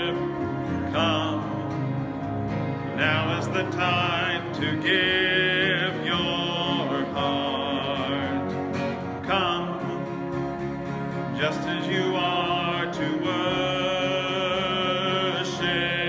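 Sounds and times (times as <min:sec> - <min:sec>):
person singing worship song: 0:00.0 - 0:02.1, 0:02.9 - 0:10.3, 0:11.2 - 0:16.0
instrumental accompaniment: 0:00.0 - 0:16.0.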